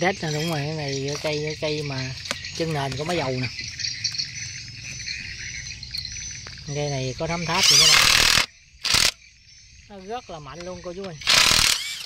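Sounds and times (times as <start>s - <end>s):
impact wrench running: 7.6s - 9.2s, 11.2s - 12.0s.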